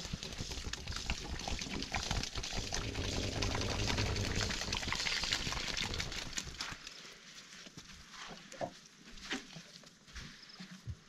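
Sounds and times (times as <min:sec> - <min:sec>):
hippopotamus grunting: 0:02.7 - 0:06.0.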